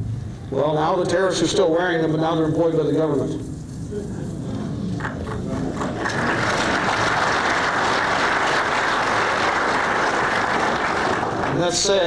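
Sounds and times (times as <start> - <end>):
audience applauding: 5.0 - 12.0.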